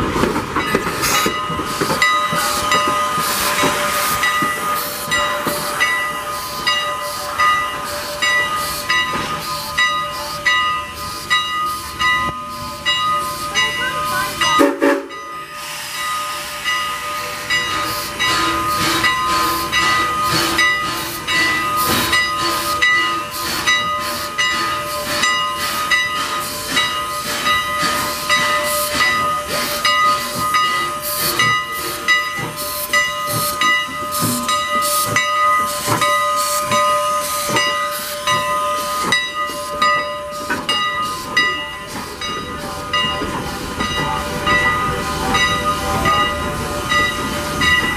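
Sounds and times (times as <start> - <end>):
steam hissing: 0.0 - 47.9
steam locomotive chuffing beats: 0.0 - 47.9.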